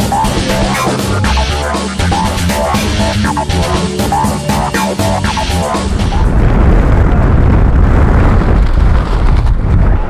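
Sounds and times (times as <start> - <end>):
wind buffeting microphone: 5.8 - 10.0.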